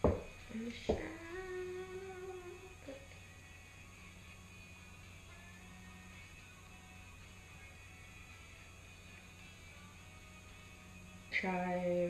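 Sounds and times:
long steady pitched tone: 0:00.5 - 0:07.8.

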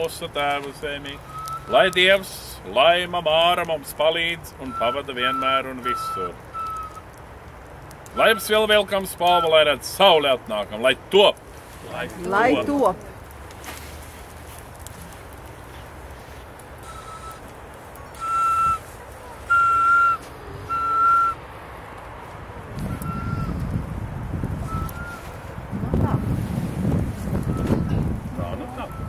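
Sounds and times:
whistled notes: 0:01.1 - 0:02.2, 0:04.6 - 0:07.1, 0:08.1 - 0:09.6, 0:16.8 - 0:17.5, 0:18.1 - 0:21.4, 0:22.8 - 0:23.7, 0:24.6 - 0:25.4, 0:27.4 - 0:29.0
wind rumble on microphone: 0:22.4 - 0:29.0.

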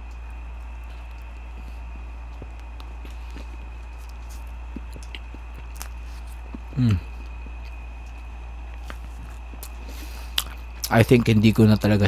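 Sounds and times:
man chewing food: 0:00.0 - 0:11.9
faint high whine: 0:00.0 - 0:12.0
low electrical hum: 0:00.0 - 0:12.0.

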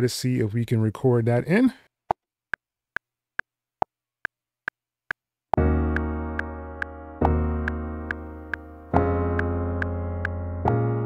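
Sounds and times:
metronome clicking: 0:05.9 - 0:08.7, 0:09.4 - 0:10.4.

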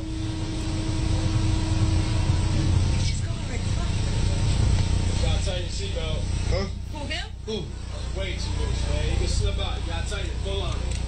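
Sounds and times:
faint steady hum: 0:00.0 - 0:11.0
low rumbling noise: 0:00.0 - 0:11.0.

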